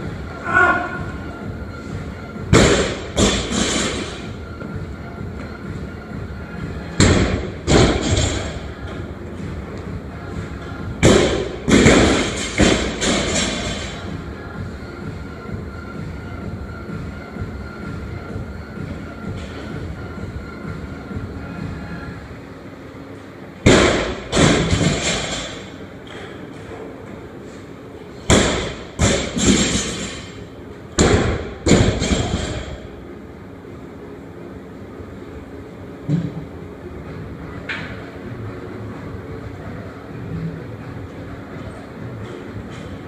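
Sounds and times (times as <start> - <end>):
barbell dropped on gym floor: 28.3 - 30.3.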